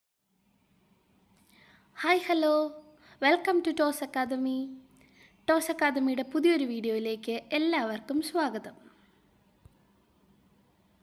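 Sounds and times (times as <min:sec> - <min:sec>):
faint hiss: 0:00.3 - 0:06.4.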